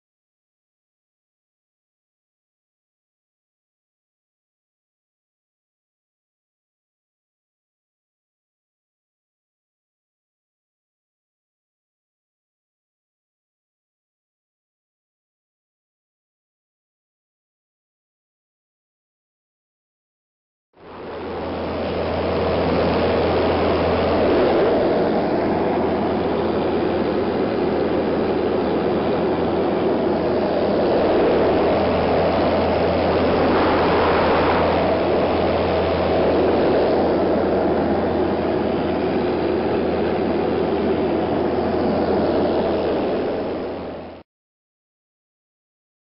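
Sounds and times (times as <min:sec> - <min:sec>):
aircraft engine and propeller drone: 0:20.8 - 0:44.2
loud wind rush: 0:20.8 - 0:44.2.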